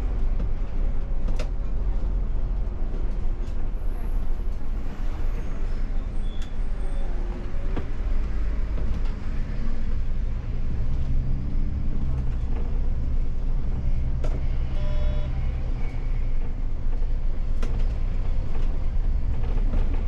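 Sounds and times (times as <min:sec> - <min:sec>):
bus engine and road rumble: 0:00.0 - 0:20.0.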